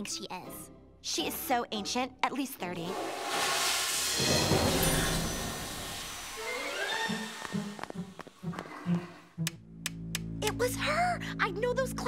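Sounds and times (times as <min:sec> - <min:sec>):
cartoon toilet flushing: 0:02.8 - 0:08.0.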